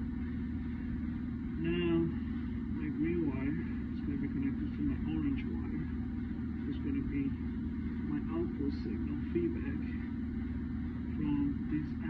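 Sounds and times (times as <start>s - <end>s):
low mechanical hum: 0.0s - 12.0s
person's voice: 1.6s - 6.0s, 6.6s - 10.2s, 11.1s - 12.0s.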